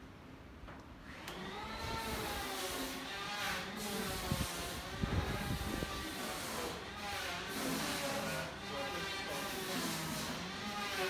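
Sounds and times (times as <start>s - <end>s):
motor whine spinning up: 1.0s - 2.6s
hiss: 2.0s - 8.5s, 9.3s - 11.0s.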